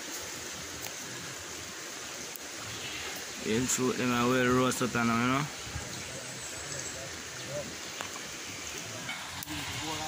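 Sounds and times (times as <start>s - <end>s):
stream rushing: 0.0s - 10.0s.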